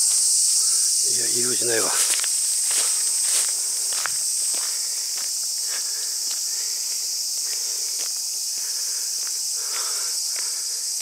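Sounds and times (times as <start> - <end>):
footsteps on pavement: 0.0 - 1.0, 1.8 - 10.6
high-pitched insect chorus: 0.0 - 11.0.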